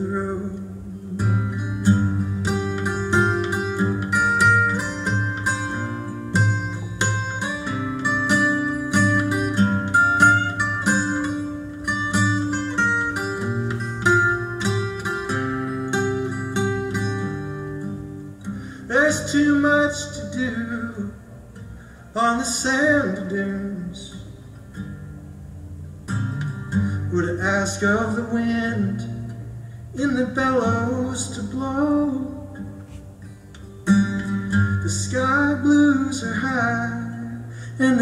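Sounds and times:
fingerpicked acoustic string instrument: 0.0 - 38.0.

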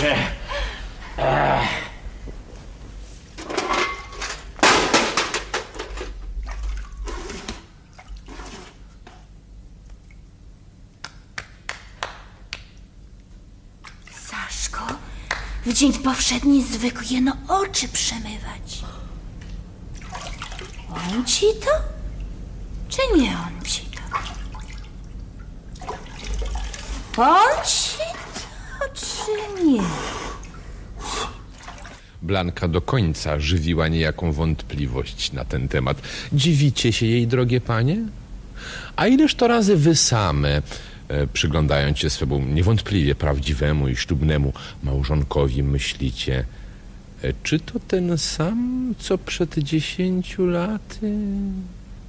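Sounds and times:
low steady hum: 0.0 - 52.0
water splashing: 6.3 - 8.9, 19.9 - 22.4, 23.5 - 30.8, 31.4 - 32.1.

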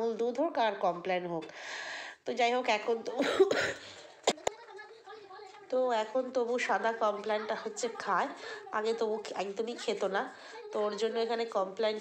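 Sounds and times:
woman coughing: 3.1 - 4.6.

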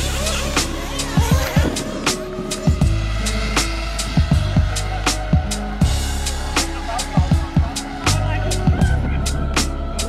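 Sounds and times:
held bass notes: 0.0 - 10.0
kick drum: 8.7 - 9.2.

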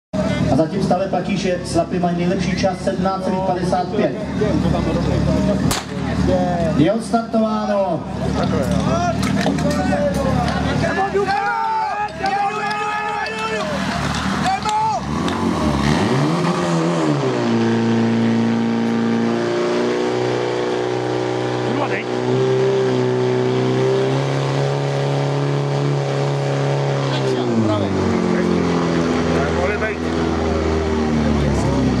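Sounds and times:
voices: 0.2 - 15.2
starting gun shot: 5.7 - 6.0
fire pump engine running: 26.3 - 32.0.

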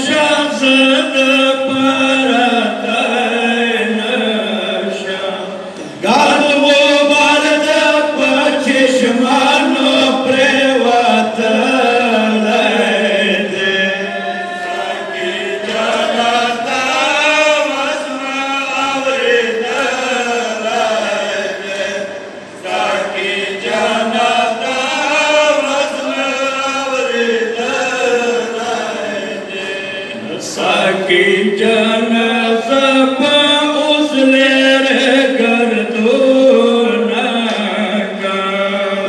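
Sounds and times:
men chanting a lament: 0.0 - 39.0.

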